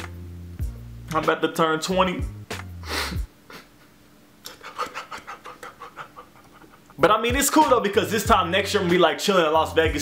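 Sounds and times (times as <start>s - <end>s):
man's breathy laughter: 4.5s - 7.0s.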